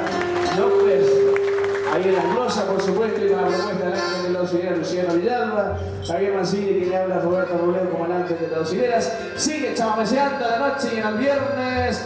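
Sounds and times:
accordions playing folk music: 0:00.0 - 0:12.0
guitar and bass: 0:00.0 - 0:12.0
man singing: 0:02.0 - 0:12.0.

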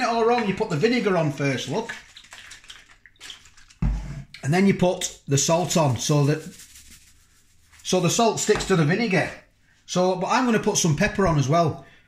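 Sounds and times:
liquid splattering onto food: 0:01.9 - 0:03.8.

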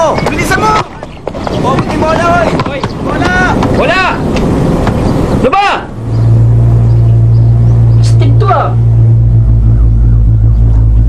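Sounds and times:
steady low rumble: 0:03.0 - 0:11.0
voice-like call: 0:06.2 - 0:11.0.

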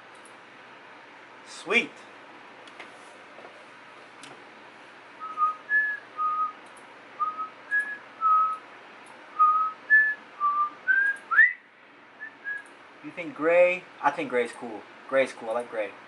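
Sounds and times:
man whistling a tune: 0:05.2 - 0:06.6, 0:07.2 - 0:08.6, 0:09.4 - 0:11.6, 0:12.2 - 0:12.6.

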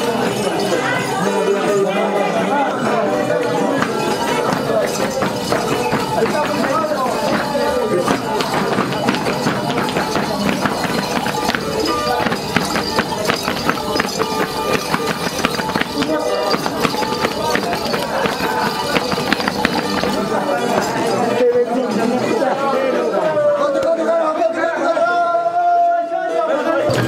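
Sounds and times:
crowd voices: 0:00.0 - 0:27.0
boots stamping on hard floor: 0:03.8 - 0:21.1.

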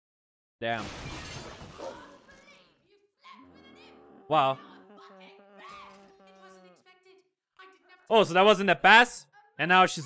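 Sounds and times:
glass shattering: 0:00.8 - 0:02.0.

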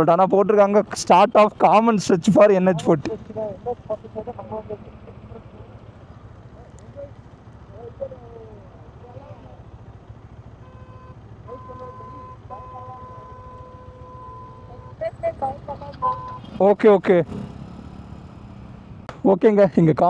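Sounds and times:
motorcycle engines idling: 0:00.0 - 0:20.0.

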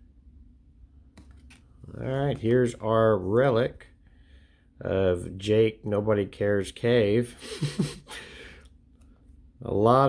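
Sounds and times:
low room hum: 0:00.0 - 0:10.0
cards sliding with light clicks: 0:01.1 - 0:02.8.

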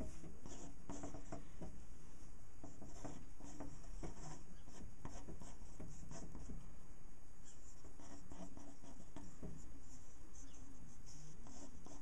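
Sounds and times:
pen scratching on paper: 0:00.0 - 0:01.7, 0:02.6 - 0:06.6, 0:07.4 - 0:12.0.

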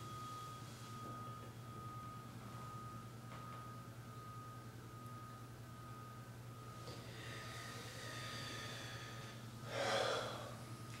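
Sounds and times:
faint high ringing tones: 0:00.0 - 0:10.9
thin steady whine: 0:00.0 - 0:11.0
person's short noisy breath: 0:07.0 - 0:10.6.

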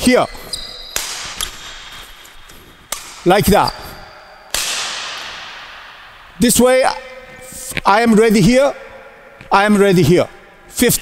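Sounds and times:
badminton racket hitting shuttlecock: 0:00.7 - 0:06.0.

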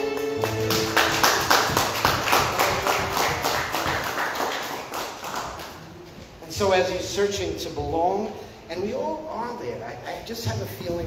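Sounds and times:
music: 0:00.0 - 0:03.4
hands clapping in rhythm: 0:00.0 - 0:05.8.

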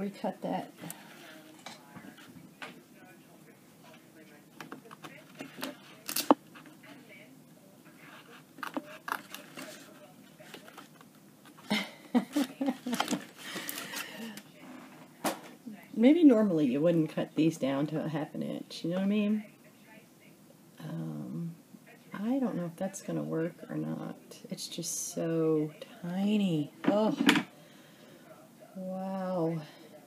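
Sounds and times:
paper rustling: 0:08.1 - 0:11.1.

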